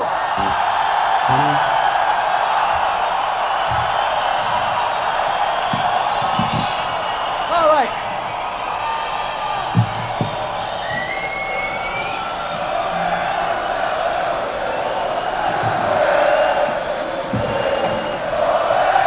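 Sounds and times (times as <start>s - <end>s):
crowd yelling and cheering: 0.0s - 19.0s.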